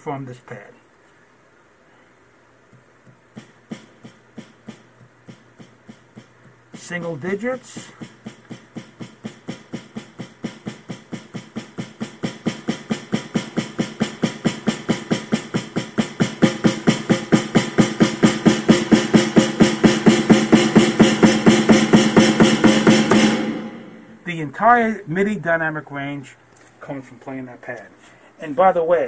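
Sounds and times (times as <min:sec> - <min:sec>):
snare drum single strokes: 0:02.7 - 0:24.2.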